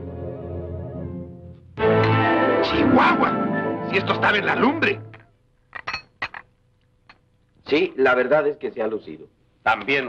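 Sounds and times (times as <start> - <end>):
china cups and saucers clinking: 5.7 - 6.5.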